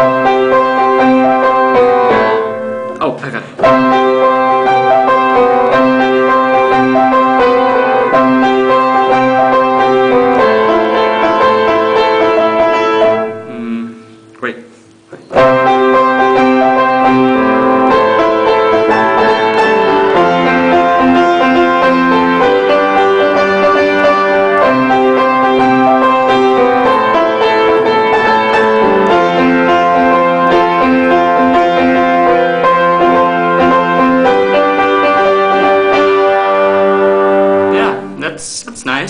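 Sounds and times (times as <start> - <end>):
solo piano melody: 0.0 - 14.4, 15.0 - 38.3.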